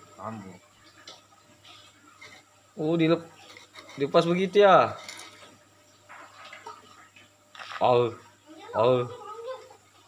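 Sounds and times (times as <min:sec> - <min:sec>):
faint water splashes and drips: 0:05.4 - 0:08.1.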